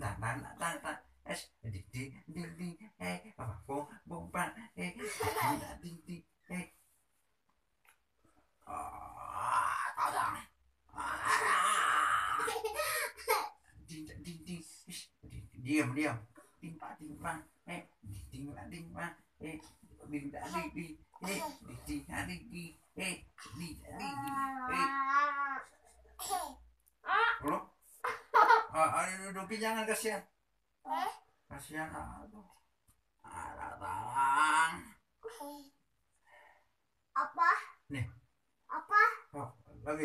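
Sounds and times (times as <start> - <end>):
person speaking: 0.0 - 6.8, 13.8 - 26.4
high-pitched held vocal sound: 23.8 - 25.8.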